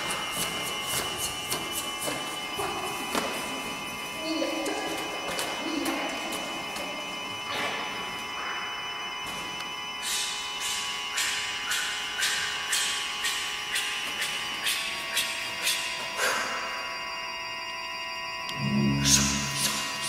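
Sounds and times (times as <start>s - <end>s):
church organ tones: 16.1s - 20.0s.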